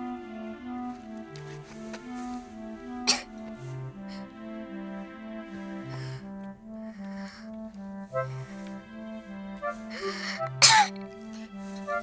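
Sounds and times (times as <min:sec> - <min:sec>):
soft background music: 0:00.0 - 0:12.0
girl sneezing: 0:03.1 - 0:03.3, 0:10.6 - 0:11.0
girl inhaling breathily: 0:09.8 - 0:10.5.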